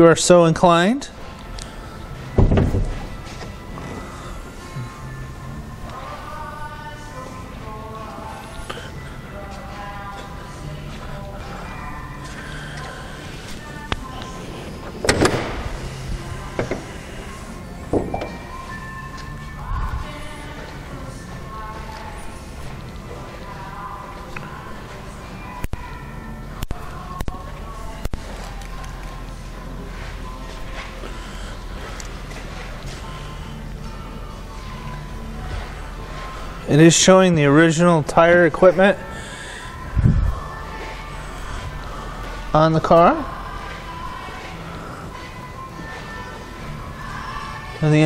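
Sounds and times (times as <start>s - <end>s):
background music: 0.0s - 48.0s.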